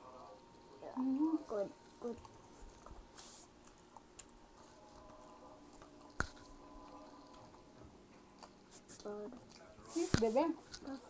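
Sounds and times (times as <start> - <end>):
person chewing food: 2.1 - 9.9.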